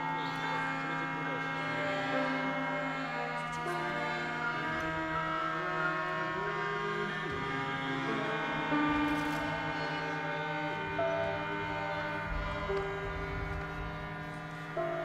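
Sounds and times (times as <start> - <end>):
bowed violins and cello: 0.0 - 15.0
harmonium chords: 0.0 - 15.0.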